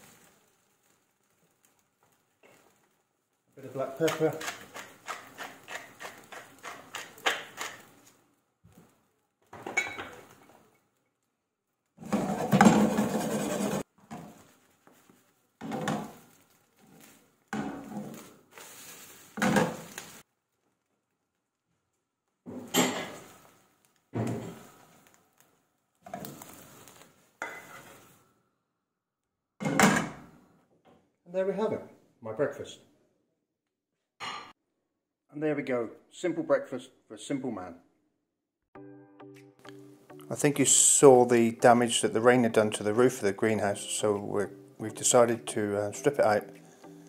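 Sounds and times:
frying pan clattering: 3.7s - 7.9s, 19.3s - 20.2s, 29.6s - 30.3s
pepper mill grinding: 3.8s - 7.9s.

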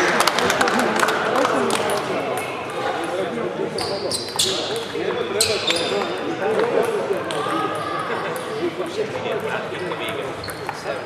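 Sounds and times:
murmur of voices: 0.0s - 11.0s
table tennis balls clicking: 9.3s - 11.0s.

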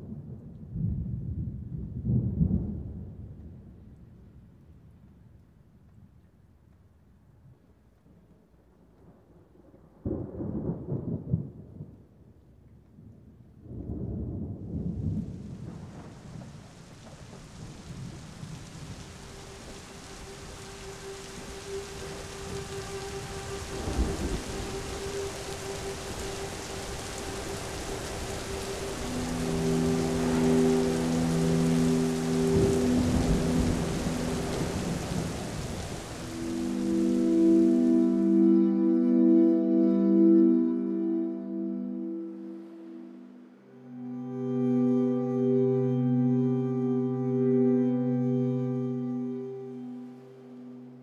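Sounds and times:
thunder rumbling: 0.0s - 4.4s, 9.2s - 12.1s, 13.6s - 38.7s
steady rain: 0.0s - 51.0s
low musical drone and chords: 18.8s - 51.0s.

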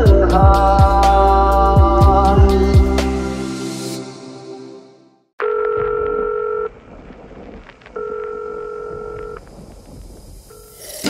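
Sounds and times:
telephone ringing tone beeps: 5.4s - 6.7s, 8.0s - 9.4s
faint crackle and clicks: 5.4s - 10.8s.

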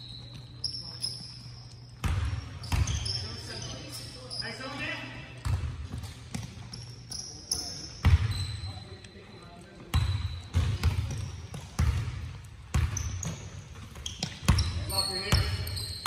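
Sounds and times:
basketball bouncing on hardwood floor: 9.9s - 14.7s.

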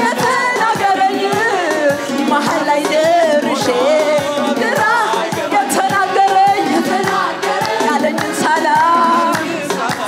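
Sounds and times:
group singing worship song: 0.0s - 10.0s
steady beat: 0.0s - 10.0s
hand claps: 7.0s - 10.0s.

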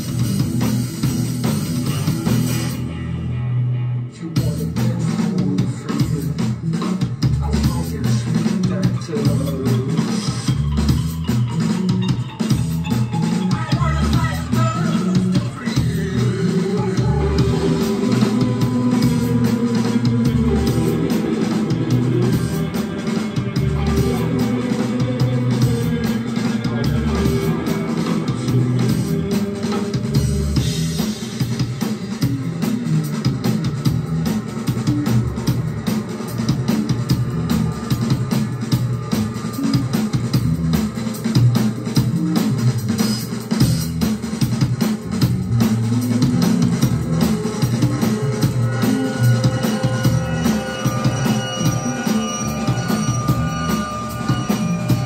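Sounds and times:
drum kit: 0.0s - 3.5s, 4.2s - 55.0s
electric guitars: 0.0s - 55.0s.

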